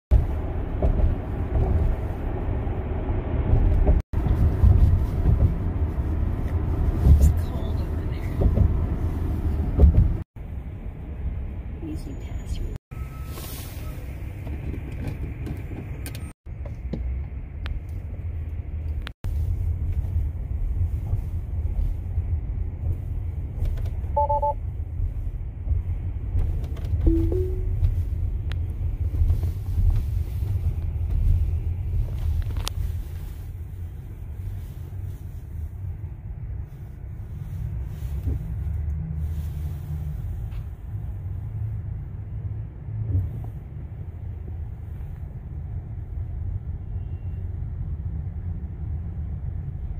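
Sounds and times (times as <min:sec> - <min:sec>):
tyre and road noise rumble: 0:00.1 - 0:49.9
two-note electronic chime: 0:27.1 - 0:27.8.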